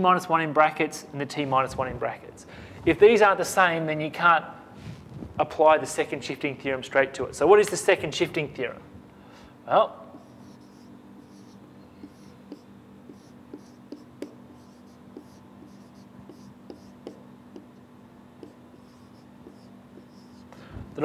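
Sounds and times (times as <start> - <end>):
low room hum: 0.0 - 21.0
marker pen on whiteboard: 10.1 - 17.8, 18.4 - 21.0.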